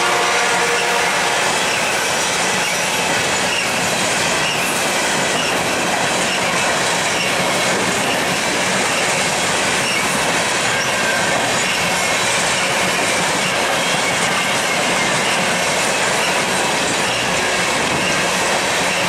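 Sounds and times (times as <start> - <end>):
steel wheels rolling on rail: 0.0 - 19.0.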